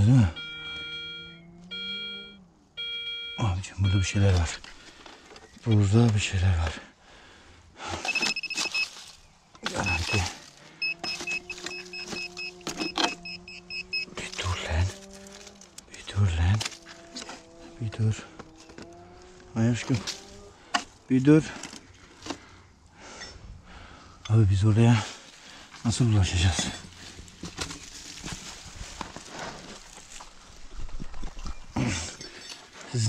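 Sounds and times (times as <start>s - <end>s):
metal detector low tone: 0.0s - 4.6s, 8.0s - 9.0s, 9.6s - 15.8s
rapid high-pitched beeping: 0.3s - 4.2s, 8.0s - 8.9s, 9.7s - 14.6s
handling clicks and knocks: 7.9s - 17.6s, 18.3s - 22.5s, 26.4s - 33.0s.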